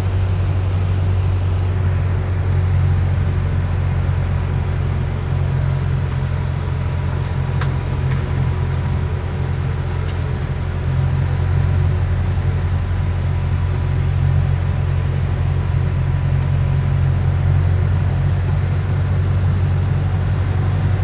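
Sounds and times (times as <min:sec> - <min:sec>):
bus engine drone: 0:00.0 - 0:21.0.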